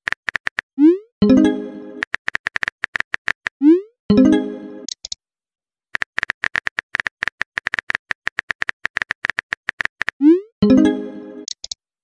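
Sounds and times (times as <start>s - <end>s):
phone keyboard typing clicks: 2.0s - 3.6s, 4.9s - 5.2s, 6.0s - 10.2s.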